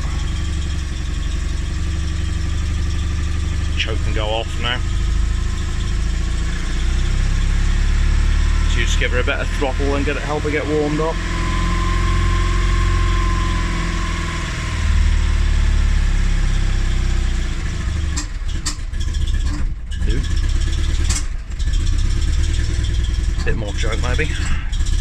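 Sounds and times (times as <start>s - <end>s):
engine idling: 0.0s - 25.0s.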